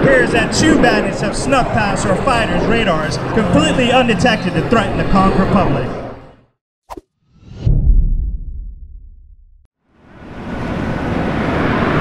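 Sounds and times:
whoosh: 6.9 - 12.0
deep boom: 7.4 - 9.7.

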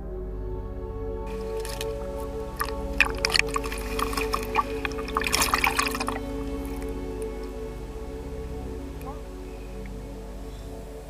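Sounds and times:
background music: 0.0 - 11.0
water splashing and dripping: 1.3 - 7.8.

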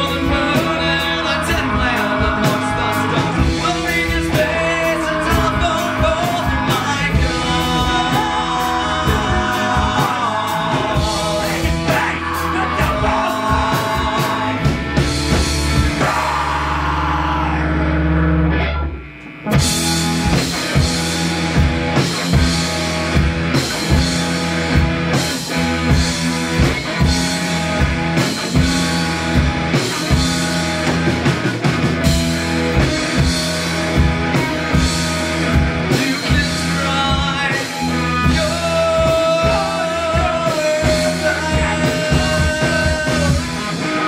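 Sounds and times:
driving drums: 0.0 - 44.0
live rock band playing: 0.0 - 44.0.

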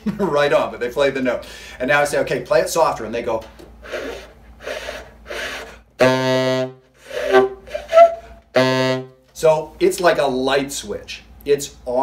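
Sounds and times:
breathy saxophone puffs: 3.8 - 9.2
low saxophone note: 6.0 - 9.2.

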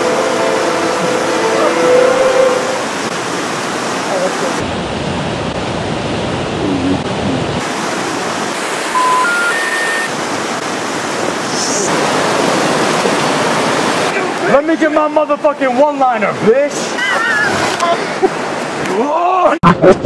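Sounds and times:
waterfall and rapids rushing: 0.0 - 19.6
short rising beeps: 8.9 - 10.1.

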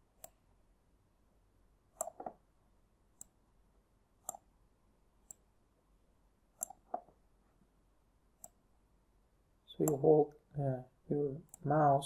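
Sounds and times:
mouse button clicks: 1.9 - 2.4.

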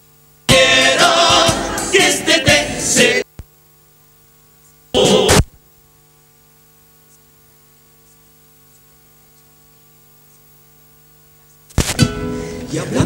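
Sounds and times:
electrical mains hum: 0.0 - 13.0
choir singing: 0.5 - 3.3.

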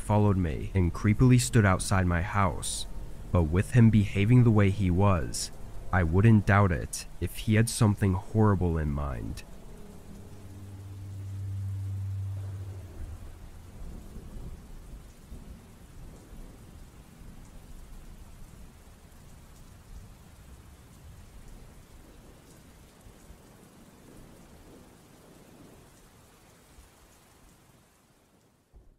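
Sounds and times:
thunder rumbles: 0.0 - 18.8
rain falling: 0.0 - 28.9.

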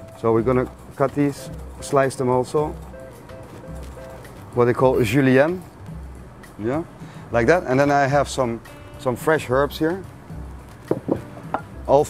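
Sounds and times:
faint background music: 0.0 - 12.0
knocks on wooden cutting board: 10.9 - 11.7.

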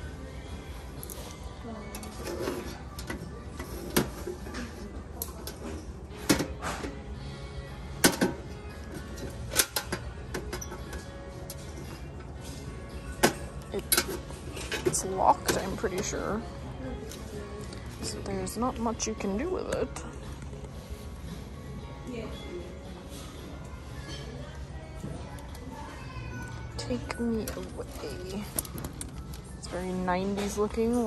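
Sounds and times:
faint background music: 0.0 - 31.0.

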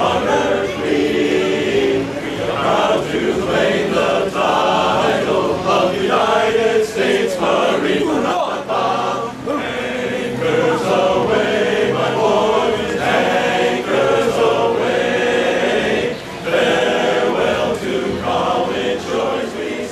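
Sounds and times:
men's chorus singing in harmony: 0.0 - 19.9.

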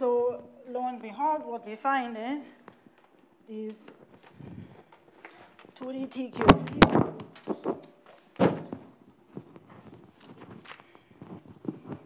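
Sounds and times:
microphone rubbing on shirt: 9.3 - 12.0.

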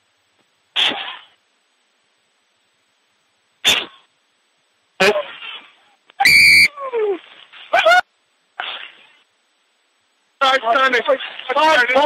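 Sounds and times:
referee's whistle blast: 6.2 - 6.7.

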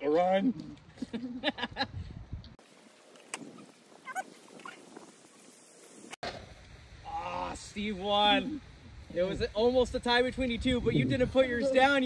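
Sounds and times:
faint squeaky calls: 3.4 - 5.5.

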